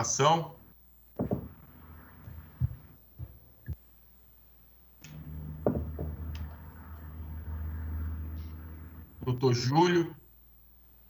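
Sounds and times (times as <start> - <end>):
low electrical hum: 0.0 - 11.0
soft low thumps: 1.2 - 3.8, 5.1 - 9.4.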